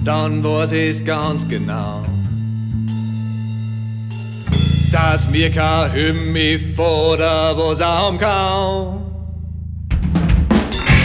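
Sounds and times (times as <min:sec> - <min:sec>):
guitar and bass chord ringing: 0:00.0 - 0:09.8, 0:10.8 - 0:11.0
drum kit playing: 0:04.1 - 0:05.5, 0:09.9 - 0:11.0.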